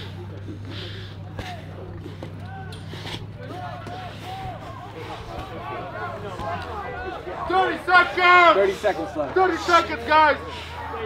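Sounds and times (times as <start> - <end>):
spectators talking and calling out: 0.0 - 11.0
steady low hum: 0.0 - 11.0.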